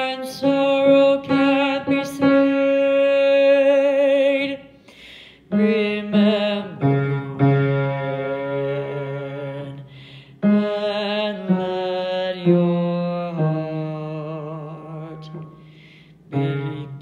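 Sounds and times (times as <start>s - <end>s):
low voice singing held notes: 5.5s - 17.0s.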